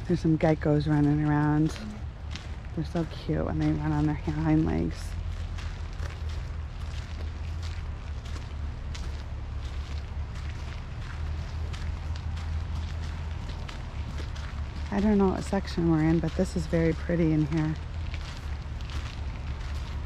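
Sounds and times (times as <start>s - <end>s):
faint footsteps on paved path: 0.0s - 20.0s.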